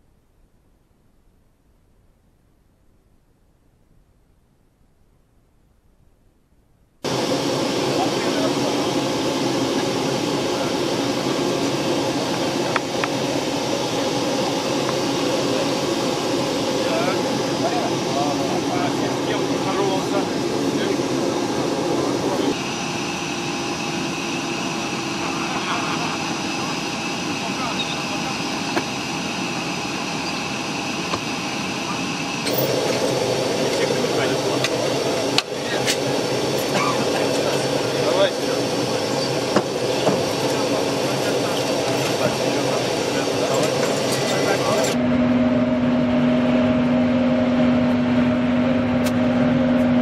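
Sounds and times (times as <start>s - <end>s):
jet turbine rushing: 7.0s - 50.0s
voices: 7.1s - 22.8s, 23.5s - 45.0s.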